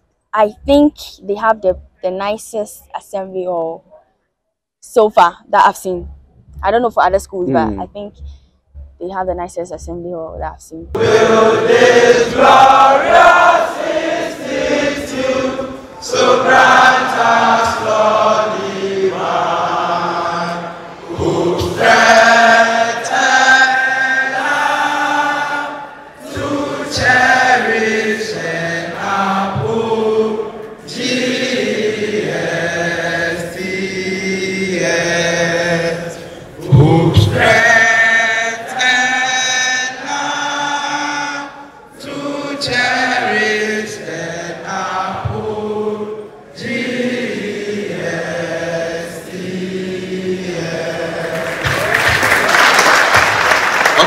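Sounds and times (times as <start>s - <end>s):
boys choir singing: 6.6s - 7.8s, 10.8s - 54.0s.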